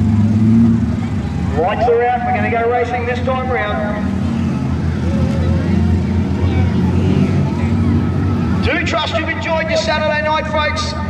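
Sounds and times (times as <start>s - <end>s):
racing car engines droning: 0.0s - 11.0s.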